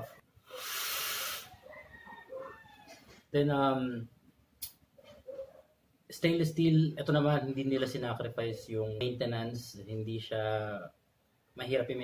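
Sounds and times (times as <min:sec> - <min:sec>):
airy hiss of vape draw: 0:00.4 - 0:01.6
breathy exhale: 0:00.5 - 0:01.5.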